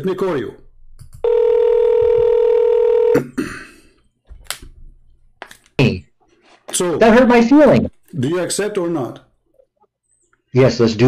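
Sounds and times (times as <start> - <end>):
phone ringback tone: 1.2 - 3.2.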